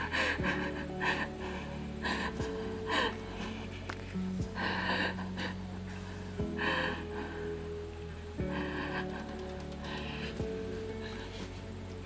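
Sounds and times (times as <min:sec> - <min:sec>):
woman crying with gasping sobs: 0:00.0 - 0:07.8
soft background music: 0:00.0 - 0:12.0.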